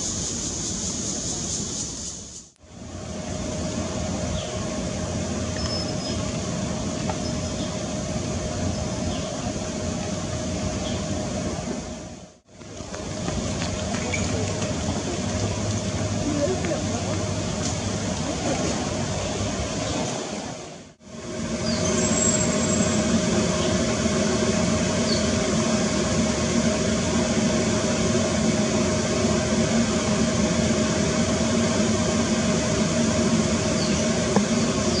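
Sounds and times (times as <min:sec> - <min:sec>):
mechanical hum with constant tone: 0:00.0 - 0:35.0.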